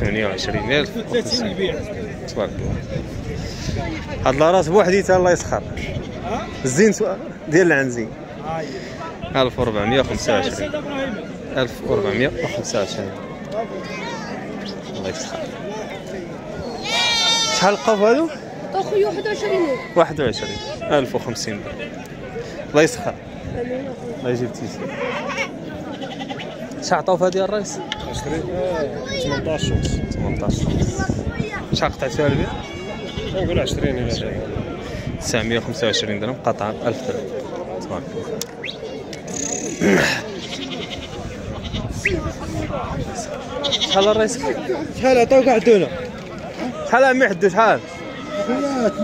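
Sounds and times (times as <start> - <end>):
men's voices: 0.0 - 18.8, 25.5 - 49.0
goat bleating: 16.8 - 18.0, 24.8 - 26.5, 32.6 - 33.4, 39.5 - 41.9, 43.6 - 44.3.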